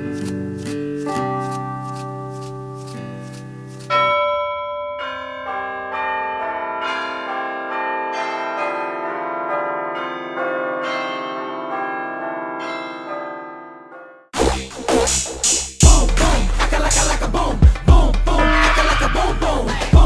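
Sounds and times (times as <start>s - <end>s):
bell-like chime melody: 3.9s - 14.2s, 18.4s - 19.8s.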